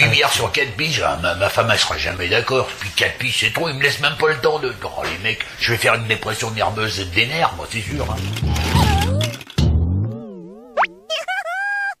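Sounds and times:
cartoon rising zip: 8.0s - 12.0s
cartoon wobbling tone: 8.1s - 12.0s.

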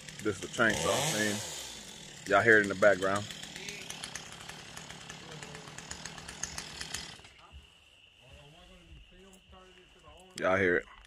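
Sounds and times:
chainsaw buzzing: 0.0s - 7.5s.

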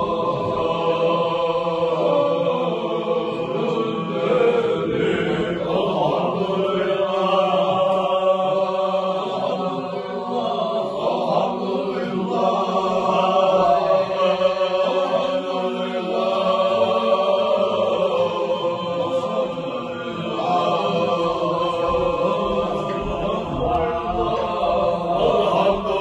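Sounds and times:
men chanting together: 0.0s - 26.0s.

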